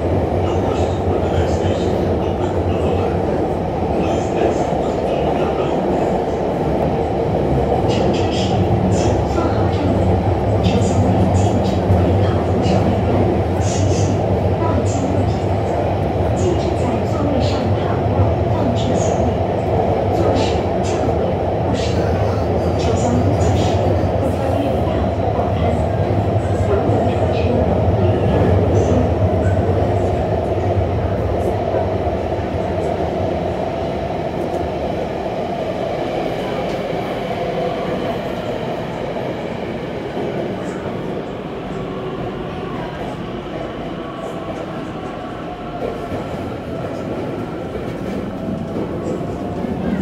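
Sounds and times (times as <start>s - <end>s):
metro train running: 0.0s - 50.0s.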